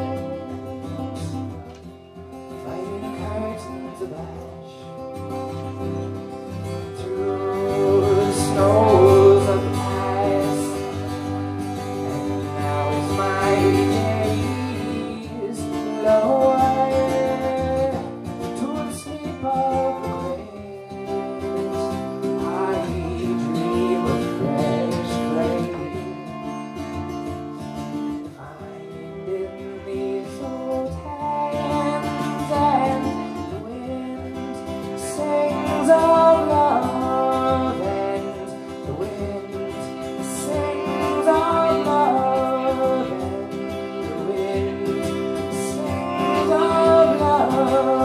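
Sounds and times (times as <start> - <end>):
acoustic guitar: 0.0 - 48.0
violin melody: 0.0 - 48.0.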